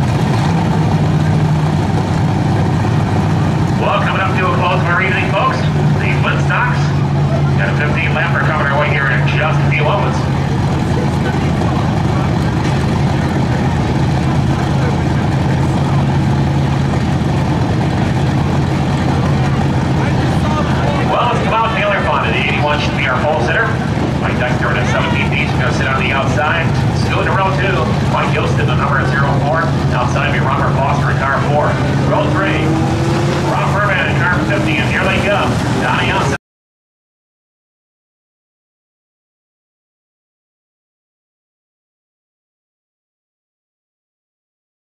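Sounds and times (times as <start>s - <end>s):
race car engines droning: 0.0s - 36.4s
people talking: 0.8s - 36.4s.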